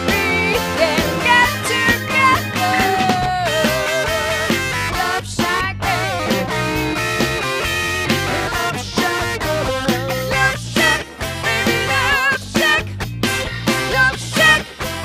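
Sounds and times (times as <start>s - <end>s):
drum kit beat: 0.0s - 15.0s
electric guitar melody: 0.0s - 15.0s.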